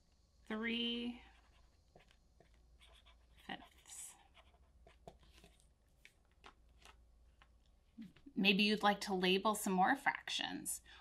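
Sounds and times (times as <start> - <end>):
pen scratching on paper: 1.2 - 5.6.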